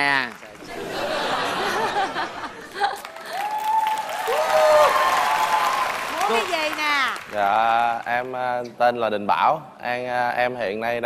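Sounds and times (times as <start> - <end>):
audience applauding: 0.0 - 8.5.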